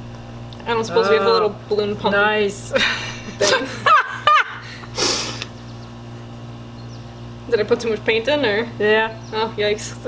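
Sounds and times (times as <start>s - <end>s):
woman laughing: 2.7s - 4.9s
breathy hiss: 4.6s - 5.5s.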